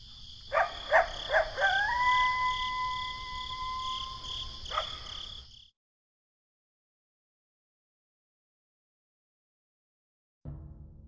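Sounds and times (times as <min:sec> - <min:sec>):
crickets chirping: 0:00.0 - 0:05.7
animal howling: 0:00.9 - 0:04.3.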